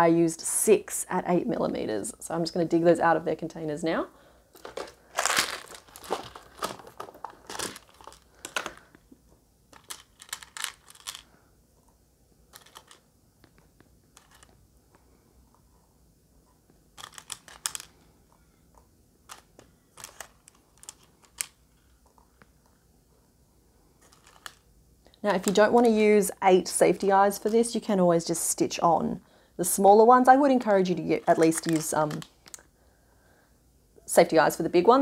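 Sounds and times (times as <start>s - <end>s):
small plastic parts rattling: 4.6s - 9.0s, 9.7s - 11.3s, 12.5s - 13.1s, 14.1s - 14.6s, 17.0s - 18.0s, 19.3s - 21.9s, 24.0s - 24.6s, 31.2s - 32.7s.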